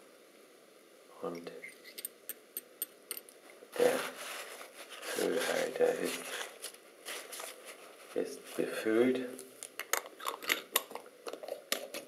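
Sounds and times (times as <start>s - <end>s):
person speaking: 1.1s - 1.8s, 3.6s - 9.6s.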